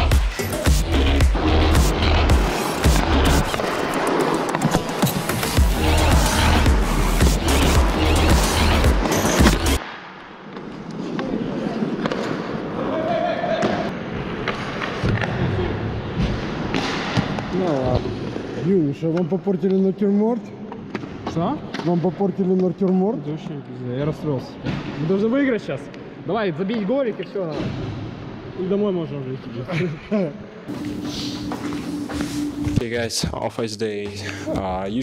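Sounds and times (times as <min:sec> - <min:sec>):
electronic music with bass beat: 0:00.0 - 0:09.8.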